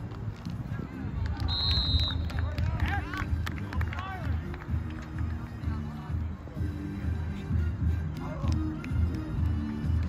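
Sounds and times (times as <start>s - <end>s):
referee's whistle blast: 1.5s - 2.3s.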